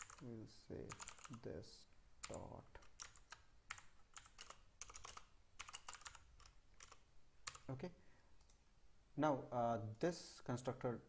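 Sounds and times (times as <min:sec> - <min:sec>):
keyboard keys clicking: 0:00.0 - 0:00.2, 0:00.9 - 0:01.4, 0:02.2 - 0:07.7.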